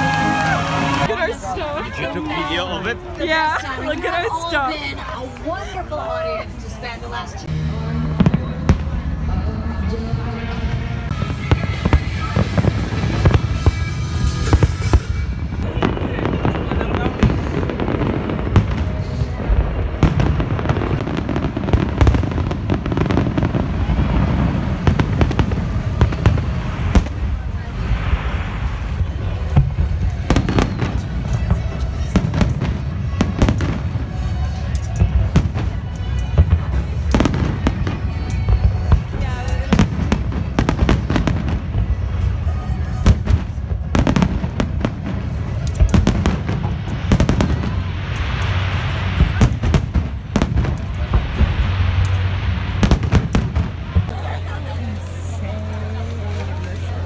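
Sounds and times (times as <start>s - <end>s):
constant low rumble: 0.0s - 57.0s
firework booms and crackles: 10.8s - 57.0s.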